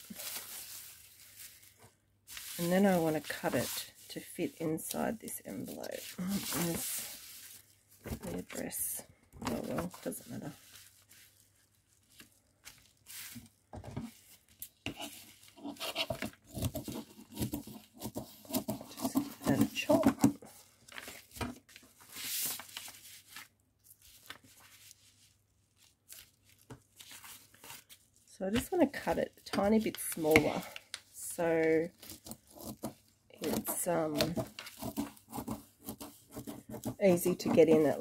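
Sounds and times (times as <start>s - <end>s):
paper envelope rustling: 0.0s - 8.8s, 9.5s - 28.3s
bubble wrap crinkling: 0.0s - 38.0s.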